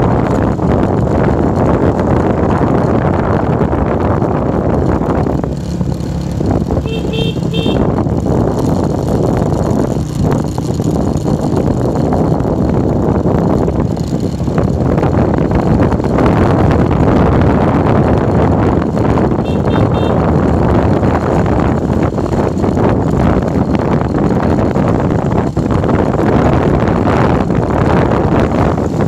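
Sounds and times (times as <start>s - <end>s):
motorbike engine: 0.0s - 29.0s
wind buffeting microphone: 0.0s - 29.0s.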